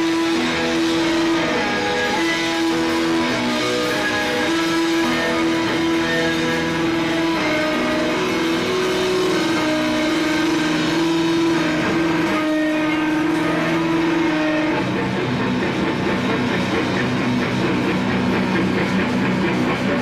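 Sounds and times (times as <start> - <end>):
distorted electric guitar: 0.0 - 20.0
drum kit: 0.0 - 20.0.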